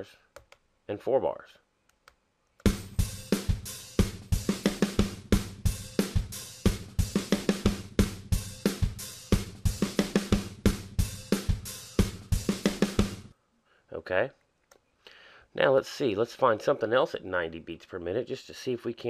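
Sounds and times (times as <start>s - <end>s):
funk drum loop: 2.6s - 13.3s.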